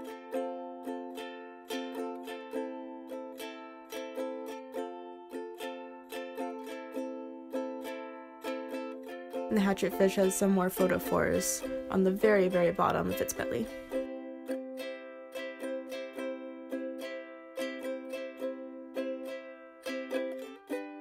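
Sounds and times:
ukulele playing: 0.0s - 21.0s.

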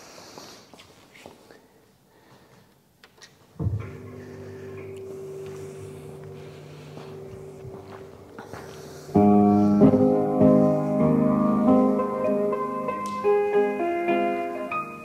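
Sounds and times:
piano music over sound system: 3.6s - 15.0s.

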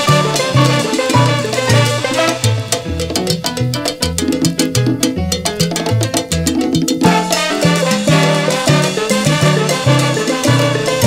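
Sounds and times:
rapid percussion beat: 0.0s - 11.0s
salsa band instrumental: 0.0s - 11.0s.

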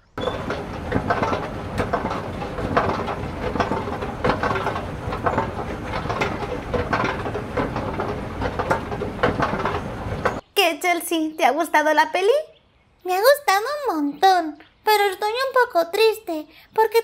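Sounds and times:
mechanical rumble: 0.0s - 10.4s
irregular clicks and clatters: 0.2s - 10.4s.

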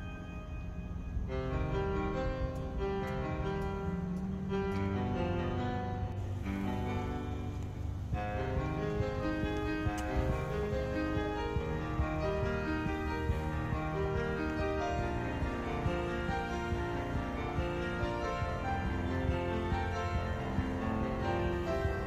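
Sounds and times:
instrumental background music: 0.0s - 22.0s.

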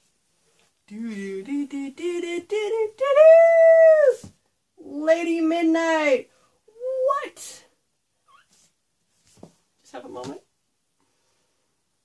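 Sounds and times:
woman speaking: 4.8s - 7.7s, 9.8s - 10.5s.

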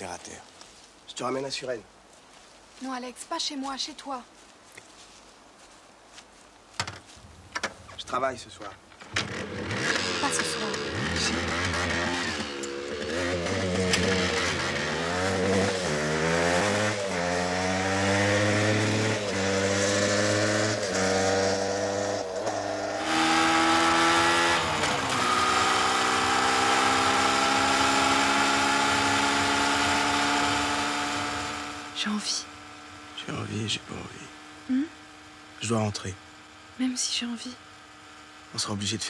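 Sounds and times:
motorcycle engine accelerating: 7.2s - 35.4s.

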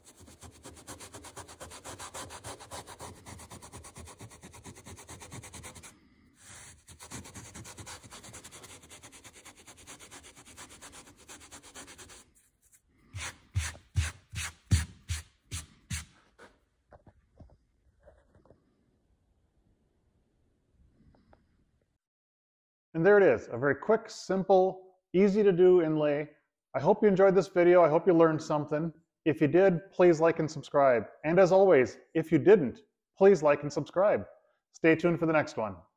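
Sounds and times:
fingers rubbing sawdust on wood: 0.0s - 16.6s
hand brushing dust across surface: 0.0s - 16.6s.

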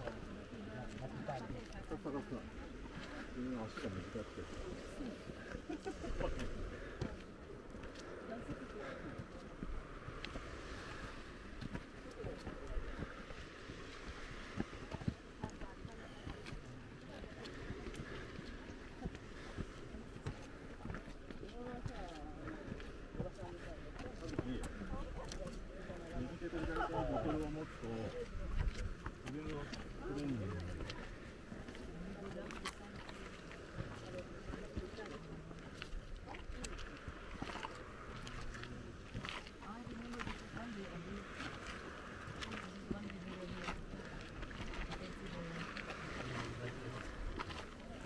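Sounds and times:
faint indistinct voices: 0.0s - 48.0s.

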